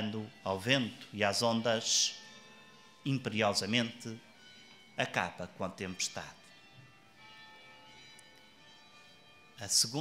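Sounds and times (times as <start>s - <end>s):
faint church bells ringing: 0.0s - 10.0s.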